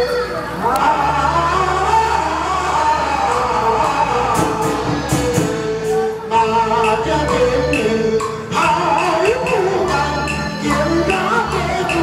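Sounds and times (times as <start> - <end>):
opera accompaniment music: 0.0 - 12.0.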